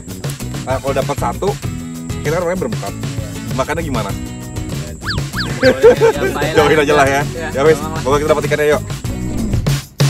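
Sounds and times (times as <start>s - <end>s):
background music: 0.0s - 10.0s
squeaky descending comedy tones: 5.0s - 5.8s.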